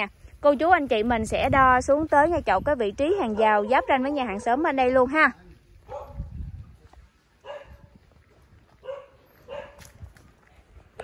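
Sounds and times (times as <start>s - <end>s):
dog barking faintly: 5.8s - 6.4s, 7.4s - 7.9s, 8.8s - 9.9s.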